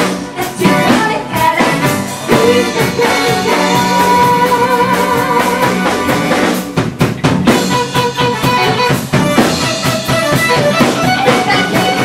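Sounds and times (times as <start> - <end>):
pop band playing: 0.0 - 12.0
drum hits: 1.8 - 12.0.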